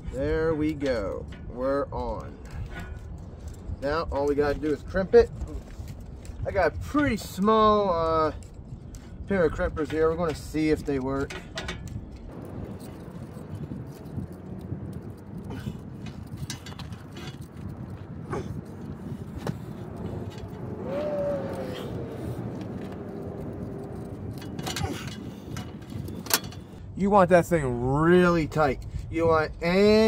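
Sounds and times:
low rumble: 11.2 - 29.8.

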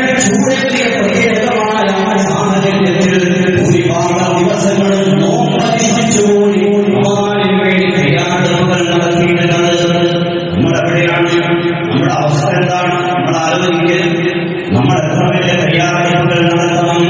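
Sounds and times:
man chanting: 0.0 - 17.0.

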